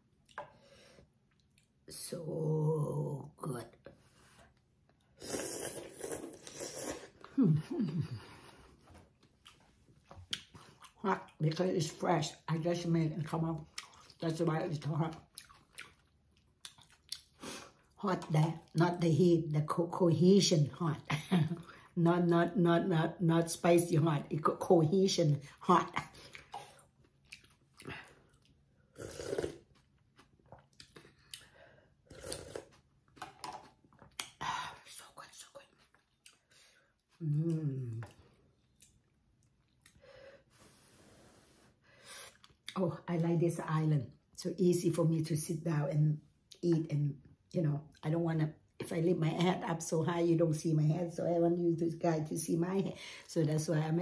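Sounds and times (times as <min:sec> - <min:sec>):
person chewing noodles: 0:04.4 - 0:11.4, 0:13.6 - 0:14.2, 0:15.1 - 0:18.0, 0:26.1 - 0:34.4, 0:35.6 - 0:40.1, 0:42.2 - 0:42.8
person slurping noodles: 0:05.2 - 0:07.3, 0:28.9 - 0:29.7, 0:32.1 - 0:32.8.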